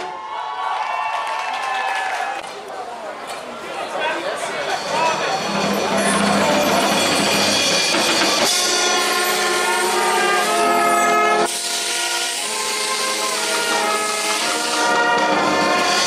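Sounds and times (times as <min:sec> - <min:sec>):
brass band playing chords: 0:04.7 - 0:16.0.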